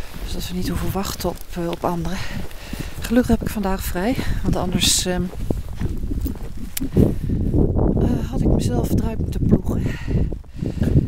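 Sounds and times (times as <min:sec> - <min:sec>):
footsteps crunching through snow: 0:00.0 - 0:08.6
wind and handling rumble: 0:00.0 - 0:11.0.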